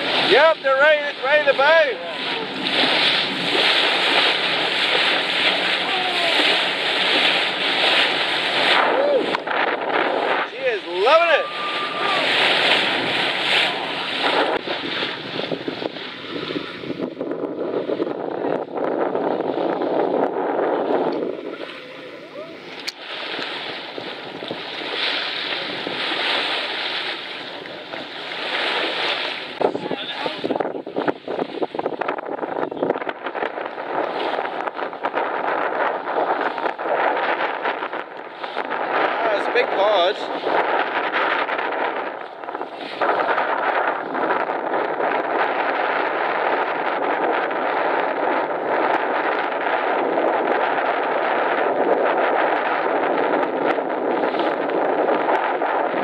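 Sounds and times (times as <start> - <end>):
water rushing along hull: 0.0 - 56.0
wind buffeting microphone: 0.0 - 56.0.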